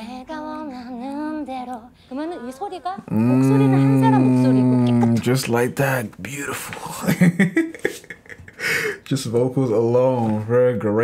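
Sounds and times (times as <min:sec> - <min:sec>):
man chuckling: 0:06.9 - 0:09.1.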